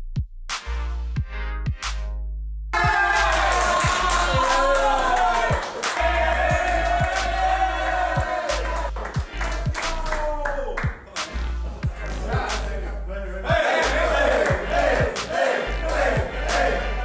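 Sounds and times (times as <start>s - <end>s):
loud music with deep bass: 0.0s - 17.0s
young men shouting and cheering: 2.8s - 10.8s, 12.0s - 17.0s.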